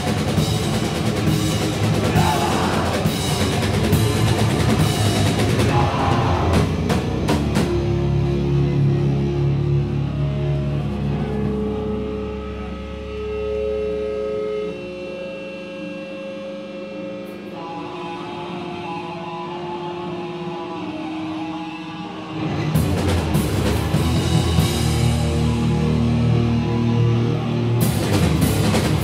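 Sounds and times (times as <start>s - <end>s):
loud full band: 0.0s - 15.6s, 17.3s - 29.0s
electric guitar feedback: 0.0s - 29.0s.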